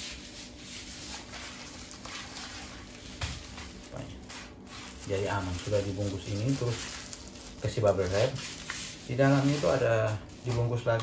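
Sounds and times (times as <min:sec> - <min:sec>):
plastic packaging rustling: 0:00.9 - 0:11.0.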